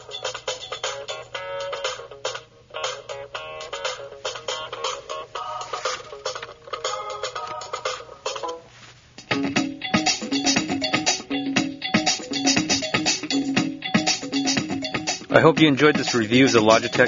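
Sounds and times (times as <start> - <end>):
music from tiny laptop speakers: 0.0 - 17.0.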